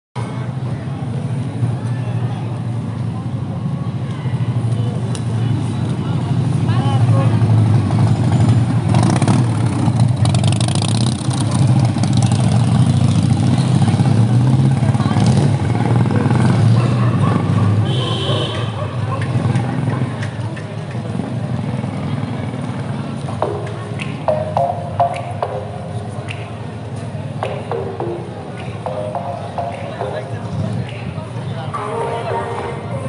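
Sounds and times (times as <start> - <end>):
voices of people on street: 0.2 - 33.0
motorcycle engines running low: 2.5 - 31.6.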